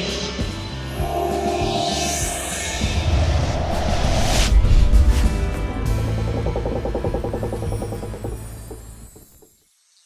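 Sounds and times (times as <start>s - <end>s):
low drone: 0.1s - 9.2s
fast fluttering pulses: 4.3s - 9.3s.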